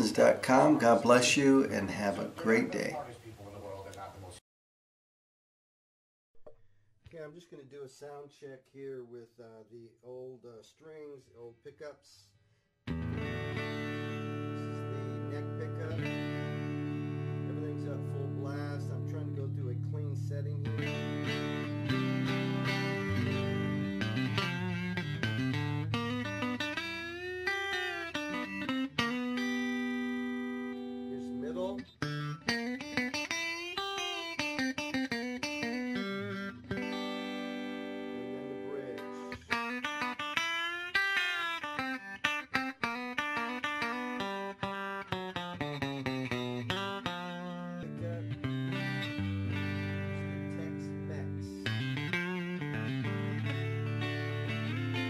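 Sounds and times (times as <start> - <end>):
clean electric guitar: 12.9 - 55.0.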